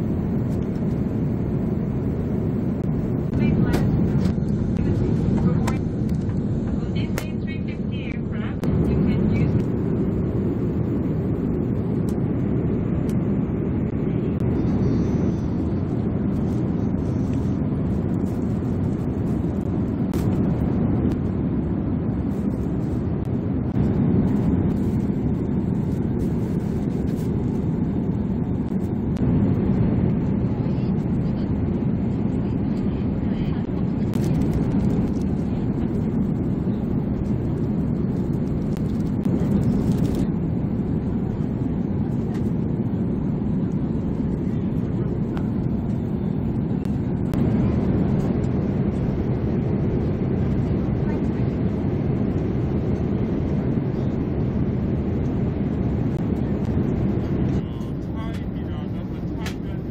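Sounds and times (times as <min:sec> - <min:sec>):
airplane cabin engine rush: 0:00.0 - 0:59.9.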